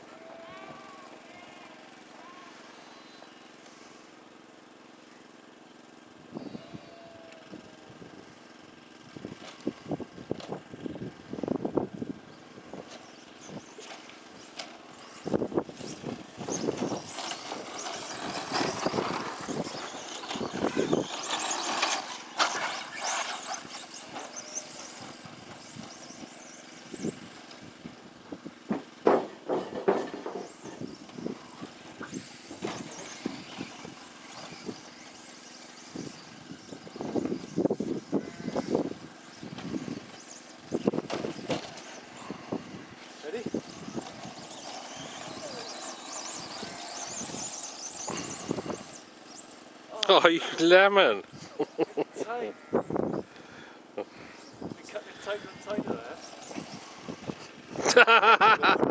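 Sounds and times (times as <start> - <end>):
radio-controlled trucks running: 0.0 - 58.9.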